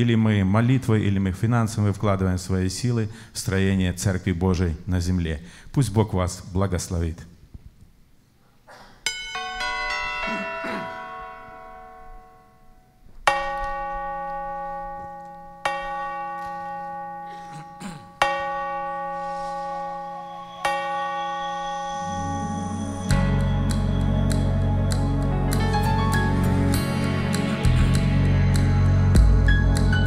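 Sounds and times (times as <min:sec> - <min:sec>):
slow ringing bell strikes: 0:09.0 - 0:25.2
clock chime bell notes: 0:09.1 - 0:24.6
low musical accompaniment: 0:19.9 - 0:30.0.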